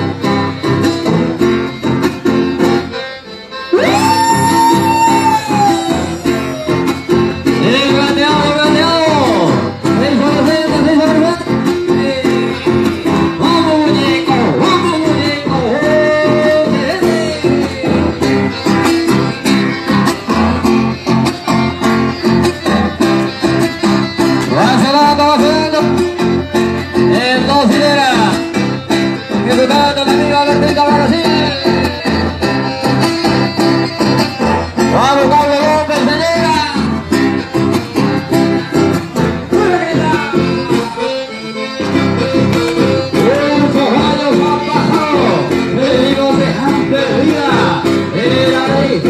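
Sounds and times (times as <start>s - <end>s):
live dance music with guitar: 0.0s - 49.0s
person singing: 3.7s - 7.0s, 7.6s - 18.3s, 42.9s - 49.0s.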